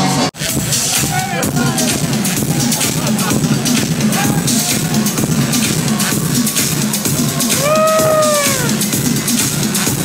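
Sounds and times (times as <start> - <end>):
electronic dance music: 0.0 - 10.0.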